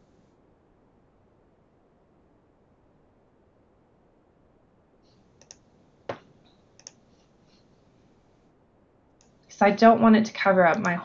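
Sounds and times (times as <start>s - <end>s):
computer mouse clicks: 5.1s - 6.2s, 6.8s - 7.6s, 10.7s - 11.0s.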